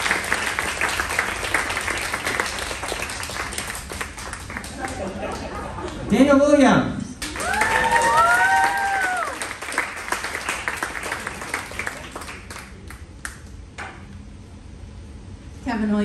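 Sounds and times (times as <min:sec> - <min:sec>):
audience applause: 0:00.0 - 0:06.1, 0:07.2 - 0:13.4
voices cheering woo: 0:07.3 - 0:09.5.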